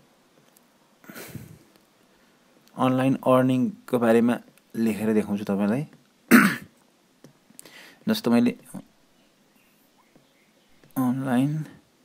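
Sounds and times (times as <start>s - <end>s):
person clearing throat: 6.3s - 6.7s.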